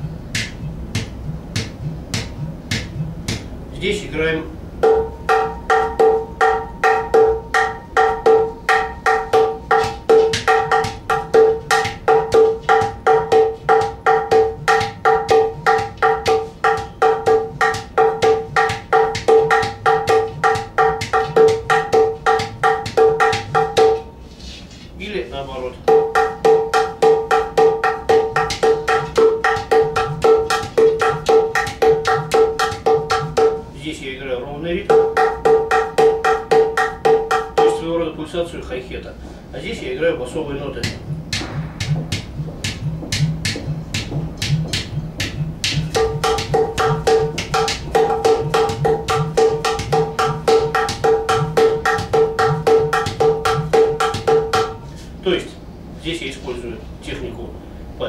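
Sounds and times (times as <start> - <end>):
swooping pitch-sliding drum sounds: 0.0 - 3.6, 4.8 - 24.0, 26.0 - 33.7, 40.7 - 54.8
drum bass hole rhythm: 0.0 - 3.7, 4.8 - 24.0, 40.8 - 54.8
hand drum strokes: 4.8 - 25.0, 25.9 - 33.8, 40.8 - 55.2.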